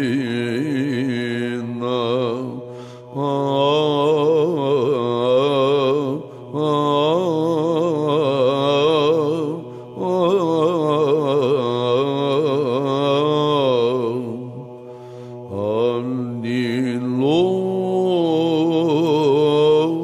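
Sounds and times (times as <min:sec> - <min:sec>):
held vocal drone: 0:00.0 - 0:20.0
man chanting melismatic melody: 0:15.4 - 0:20.0.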